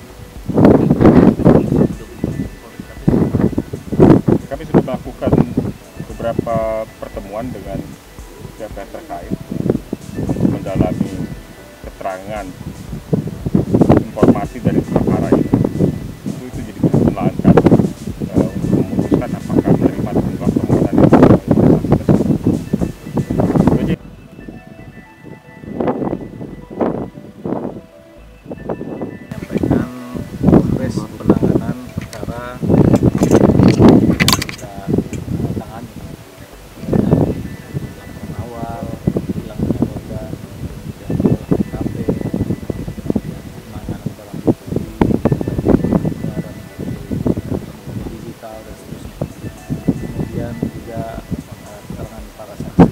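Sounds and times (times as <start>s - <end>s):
quiet background music: 0.0s - 52.9s
man talking: 0.6s - 3.6s, 4.4s - 9.5s, 10.2s - 12.8s, 13.9s - 22.4s, 23.3s - 24.0s, 29.3s - 33.8s, 34.4s - 52.9s
man speaking: 0.7s - 3.6s, 4.4s - 9.4s, 10.2s - 12.7s, 13.9s - 15.6s, 16.3s - 22.3s, 29.3s - 33.6s, 34.6s - 42.5s, 43.3s - 44.8s, 45.4s - 49.3s, 50.0s - 52.9s.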